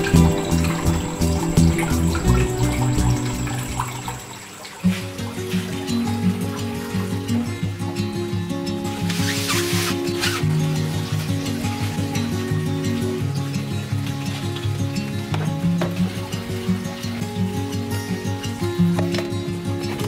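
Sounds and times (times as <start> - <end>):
background music: 0.0 - 20.0
faint trickle of water: 0.0 - 20.0.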